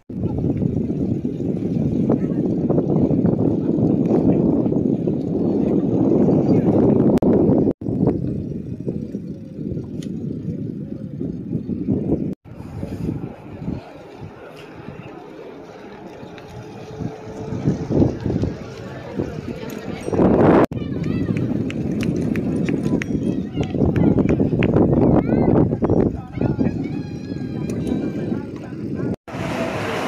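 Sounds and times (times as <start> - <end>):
wind rumbling on microphone: 0.0 - 30.0.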